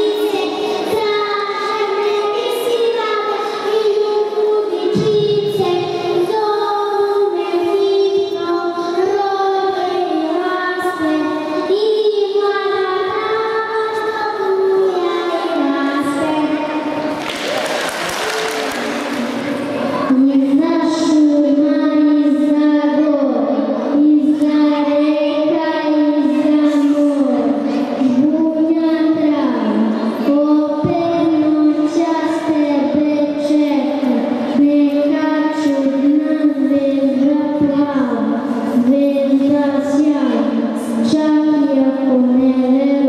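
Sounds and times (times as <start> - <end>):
girl singing into a microphone: 0.0 - 17.1, 19.9 - 43.0.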